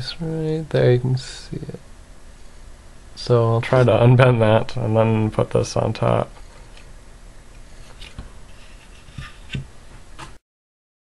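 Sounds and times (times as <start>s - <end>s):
hands handling electronics board: 7.5s - 10.4s.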